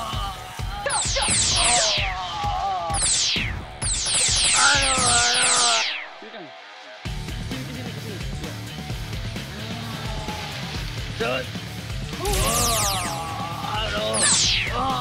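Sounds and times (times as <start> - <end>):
background music: 0.0 - 15.0
cartoon laser zaps: 0.9 - 6.2, 12.2 - 15.0.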